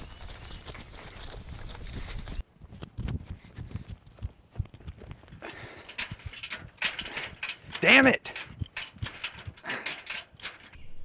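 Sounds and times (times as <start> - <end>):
quick footsteps: 0.0 - 10.8
iron gate rattling: 5.5 - 11.0.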